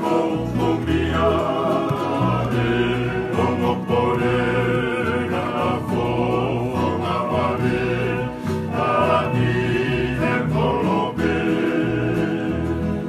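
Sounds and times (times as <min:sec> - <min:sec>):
men singing in harmony: 0:00.0 - 0:13.0.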